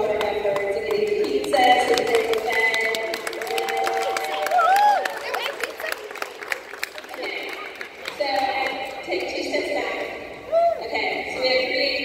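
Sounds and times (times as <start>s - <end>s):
children clapping: 0.2s - 8.8s.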